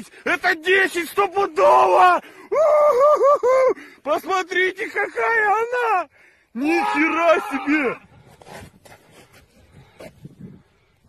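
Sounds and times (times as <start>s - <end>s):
handling rustling and scraping: 8.2s - 10.4s.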